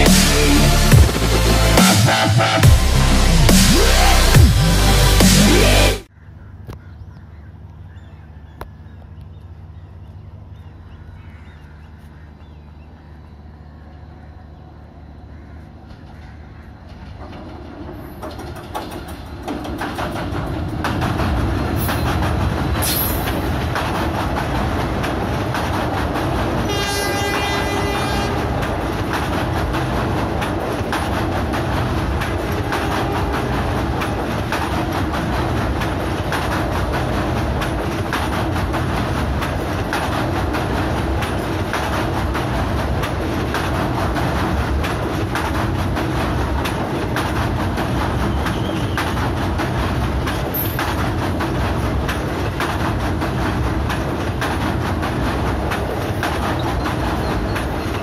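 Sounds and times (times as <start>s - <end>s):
diesel locomotive passing: 7.5s - 58.0s
train wheels clattering on track: 10.5s - 58.0s
train horn blast: 26.6s - 28.8s.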